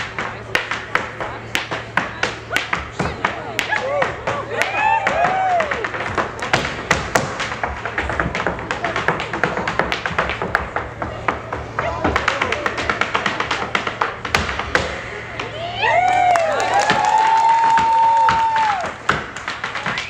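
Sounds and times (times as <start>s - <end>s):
hard shoes tapping on wooden stage: 0.0s - 15.0s, 16.7s - 20.0s.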